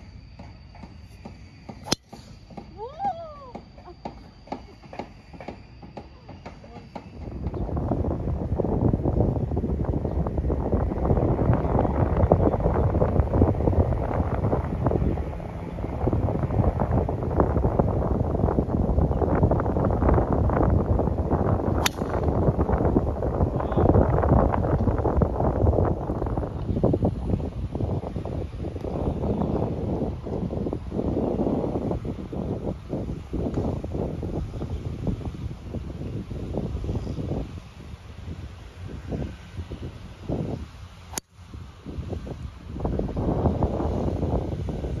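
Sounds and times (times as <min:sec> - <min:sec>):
wind noise on microphone: 0:00.8 - 0:45.0
golf club striking ball: 0:01.8 - 0:02.6, 0:21.8 - 0:22.4.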